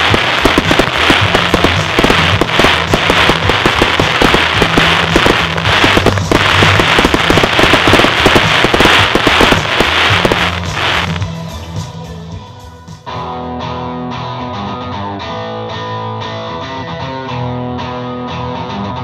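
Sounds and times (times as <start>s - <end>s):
fireworks bursting and crackling: 0.0s - 11.3s
music playing: 0.0s - 19.0s.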